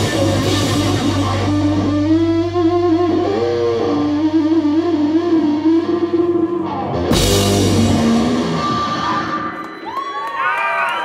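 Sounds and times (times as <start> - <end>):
rock band crash: 0.0 - 1.9, 7.1 - 9.6
audience whooping: 8.2 - 11.0.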